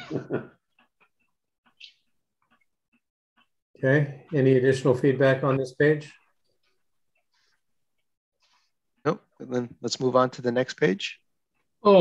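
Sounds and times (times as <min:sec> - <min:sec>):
person laughing: 0:00.0 - 0:00.6.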